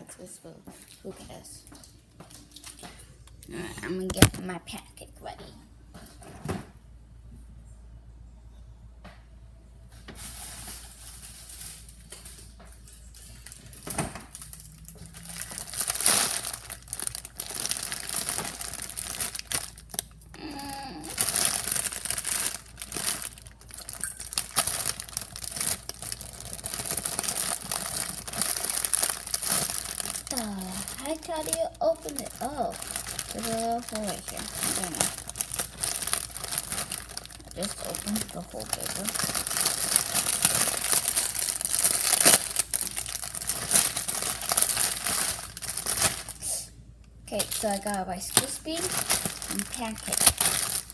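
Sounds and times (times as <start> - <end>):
plastic packet crinkling: 4.0 - 4.4, 10.2 - 50.9.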